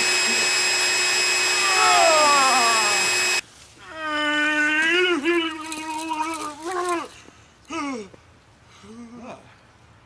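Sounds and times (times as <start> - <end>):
electronic buzz: 0.0 - 3.4
falling wail: 1.4 - 3.4.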